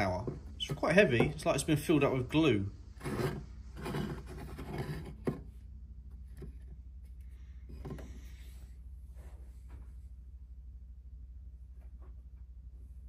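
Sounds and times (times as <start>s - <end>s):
model building sliding on wood: 2.9s - 5.4s.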